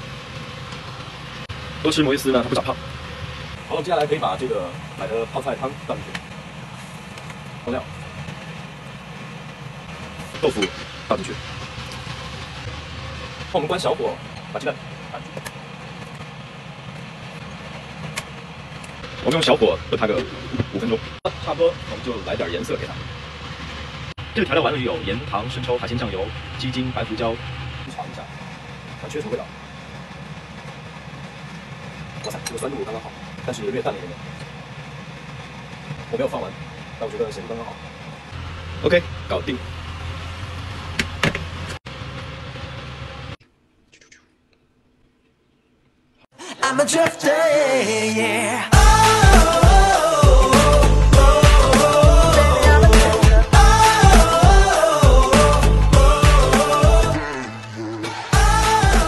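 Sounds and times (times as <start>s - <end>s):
extractor fan humming: 0.0s - 43.8s, 45.2s - 59.0s.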